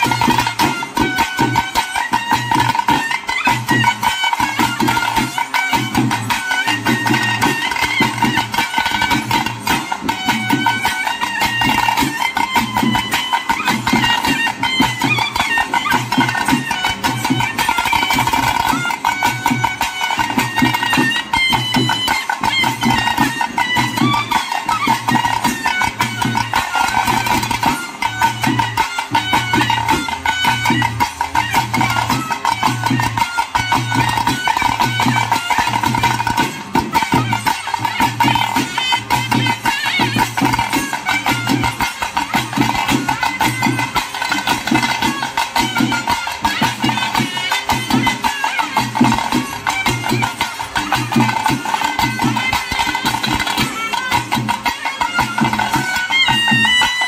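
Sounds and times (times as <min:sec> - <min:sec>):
nadaswaram melody: 0:00.0 - 0:57.0
stick drums and dhol beating: 0:00.0 - 0:57.0.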